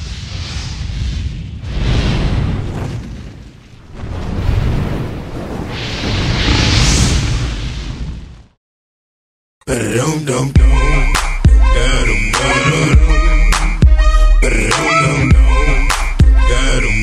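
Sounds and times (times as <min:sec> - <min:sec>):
explosion booms: 0:00.0 - 0:08.6
low rumble: 0:10.6 - 0:14.7.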